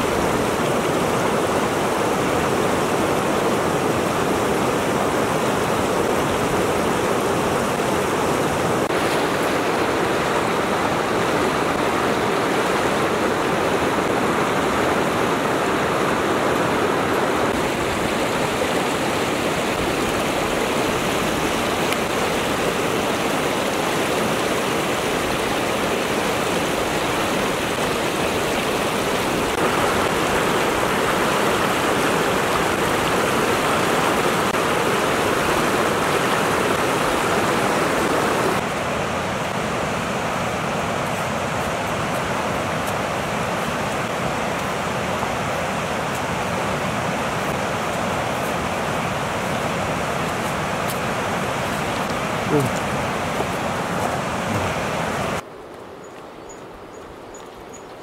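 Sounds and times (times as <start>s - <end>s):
river rushing over rocks: 0.0s - 56.0s.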